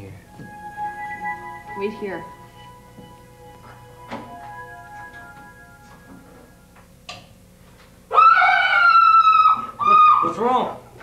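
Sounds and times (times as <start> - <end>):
woman screaming high-pitched: 8.1 - 10.4.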